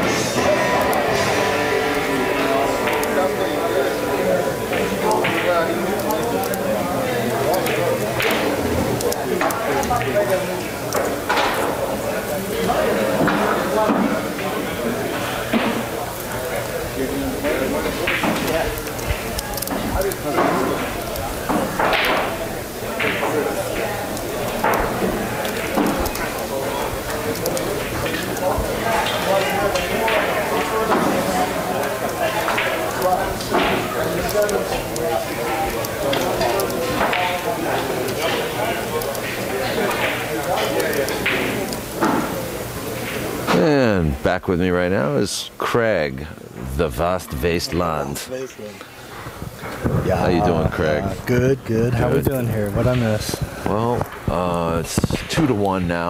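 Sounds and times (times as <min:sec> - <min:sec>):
indistinct background voices: 0:00.0 - 0:44.6, 0:45.4 - 0:56.0.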